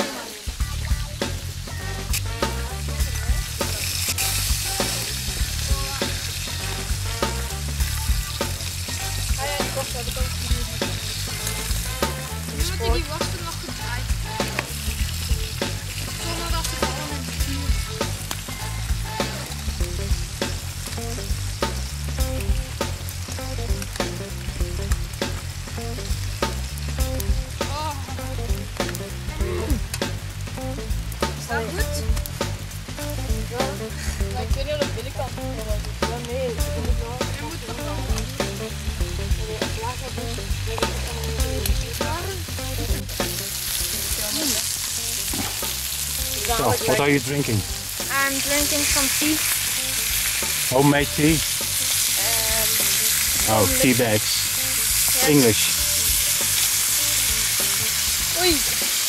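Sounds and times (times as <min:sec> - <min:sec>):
campfire crackling and popping: 0:00.0 - 0:59.0.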